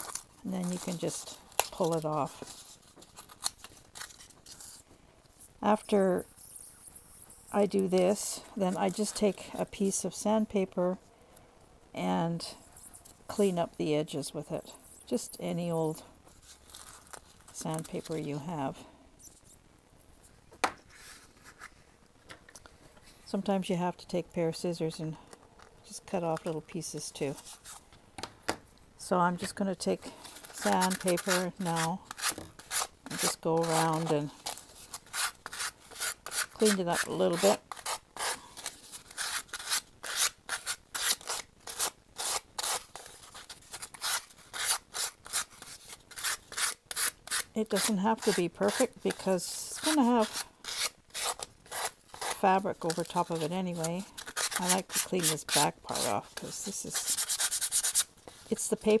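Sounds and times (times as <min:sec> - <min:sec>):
craft knife scraping foam board: 0:30.4 - 0:58.7
sandpaper rubbing foam edge: 0:56.8 - 0:58.5.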